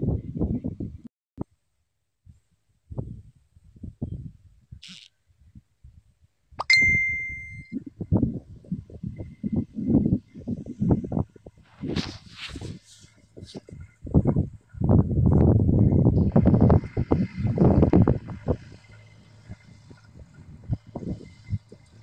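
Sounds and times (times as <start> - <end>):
low thumps and rumbles: 7.7 - 22.0.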